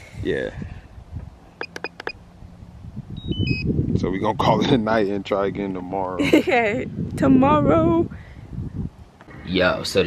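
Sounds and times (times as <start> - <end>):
short high-pitched beeps: 3.2 - 3.7.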